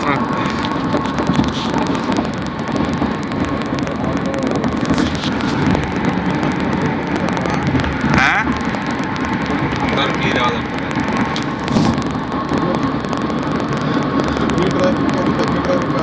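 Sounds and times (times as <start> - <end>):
car road and engine noise: 0.0 - 16.0.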